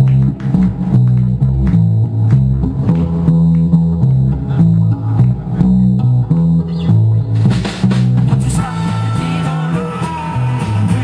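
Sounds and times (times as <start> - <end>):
sustained lead melody: 0.0 - 9.7
acoustic and electric guitars: 0.0 - 11.0
bass guitar line: 0.0 - 11.0
drums and cymbals: 7.3 - 11.0.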